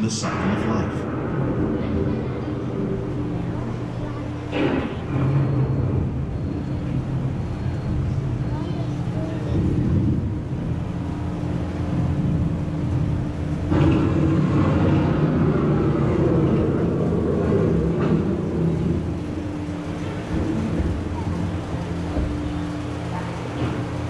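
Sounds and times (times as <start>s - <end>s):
faint steady hum: 0.0s - 24.0s
thunder rumble: 0.0s - 24.0s
wind: 0.0s - 24.0s.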